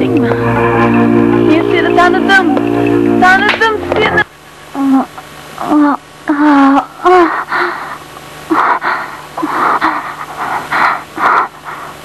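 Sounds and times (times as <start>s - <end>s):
person sobbing: 0.0s - 1.5s, 4.8s - 11.8s.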